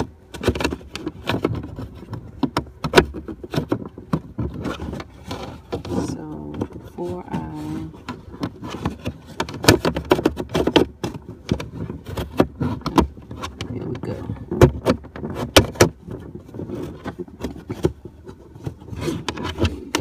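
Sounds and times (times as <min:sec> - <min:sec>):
plastic clicks and knocks: 0:00.0 - 0:07.0, 0:08.0 - 0:20.0.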